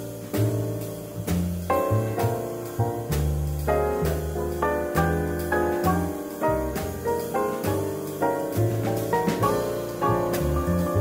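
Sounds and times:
piano chords: 0.0s - 11.0s
walking upright bass: 0.0s - 11.0s.

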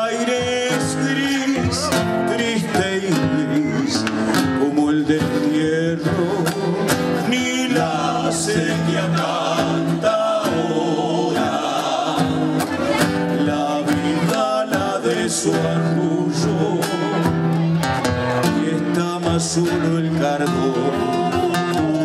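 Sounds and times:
men singing: 0.0s - 17.7s, 18.3s - 22.0s
strummed acoustic guitars: 0.0s - 22.0s.

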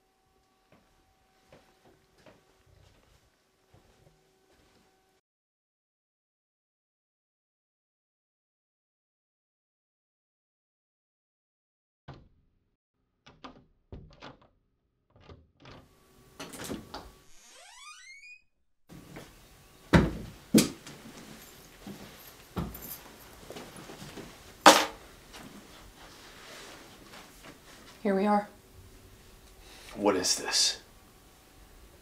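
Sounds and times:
door squeaking: 15.2s - 18.6s.

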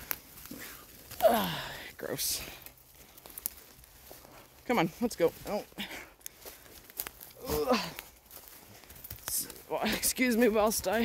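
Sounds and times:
footsteps in dry leaves: 0.0s - 11.0s.

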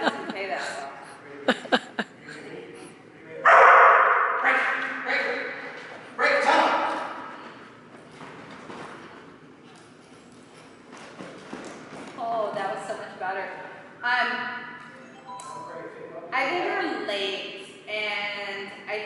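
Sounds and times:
dog barking with echo: 3.4s - 4.7s.

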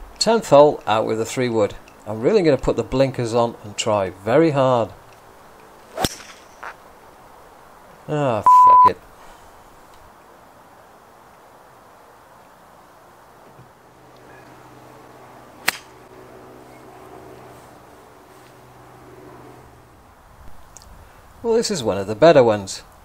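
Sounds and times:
golf club striking ball: 5.9s - 6.8s, 15.6s - 16.0s.

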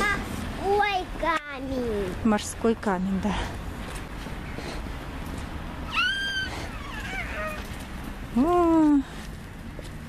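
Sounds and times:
high-pitched cry: 5.9s - 7.7s
softer lower falling cry: 5.9s - 7.8s.

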